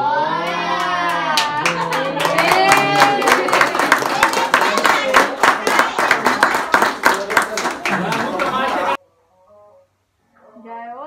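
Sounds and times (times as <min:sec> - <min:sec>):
rhythmic hand clapping: 0:00.8 - 0:09.0.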